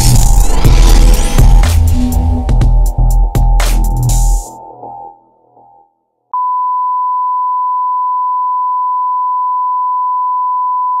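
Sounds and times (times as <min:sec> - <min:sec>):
music: 0:00.0 - 0:06.2.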